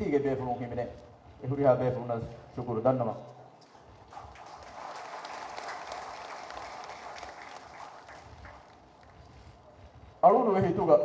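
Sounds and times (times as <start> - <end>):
audience applauding: 4.1 - 9.2.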